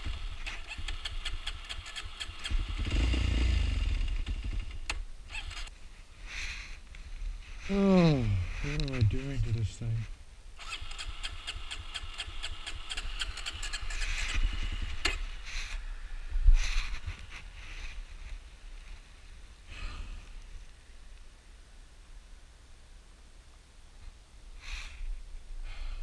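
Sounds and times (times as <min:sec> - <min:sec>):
motorcycle starter cranking: 0:00.0 - 0:05.7, 0:10.6 - 0:15.8.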